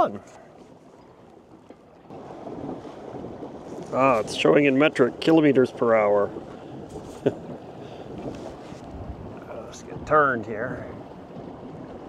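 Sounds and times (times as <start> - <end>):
water along boat hull: 0.0 - 12.0
wind on microphone: 2.1 - 12.0.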